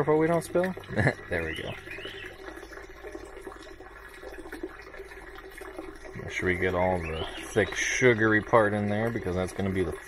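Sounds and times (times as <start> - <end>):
thick liquid trickling into jar: 0.0 - 10.0.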